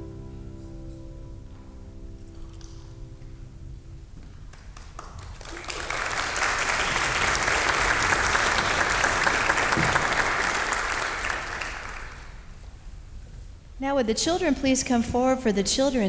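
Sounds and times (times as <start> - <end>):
congregation applauding: 4.3 - 12.7.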